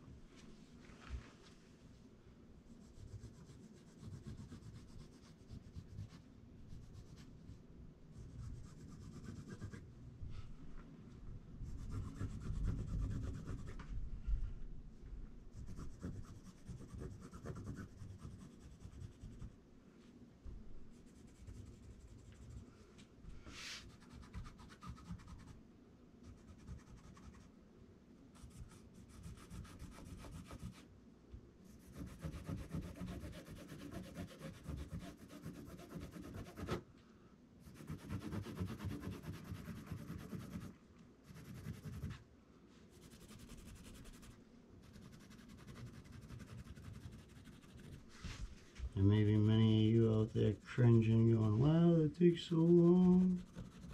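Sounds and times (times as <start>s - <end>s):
pen scratching on paper: 11.7s - 13.8s, 15.6s - 19.5s, 31.8s - 36.8s, 37.6s - 40.7s, 41.3s - 42.2s, 43.0s - 48.1s, 52.6s - 53.9s
hands sliding over paper: 23.4s - 23.9s, 47.9s - 49.0s.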